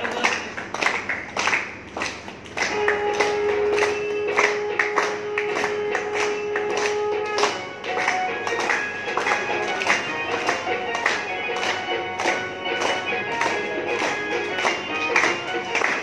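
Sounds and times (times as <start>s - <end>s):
group clapping in rhythm: 0.0s - 16.0s
devotional music: 2.7s - 16.0s.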